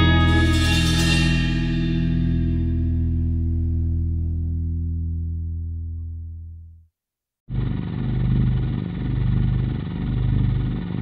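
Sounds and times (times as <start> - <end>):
electric guitar chord ringing: 0.0 - 6.5.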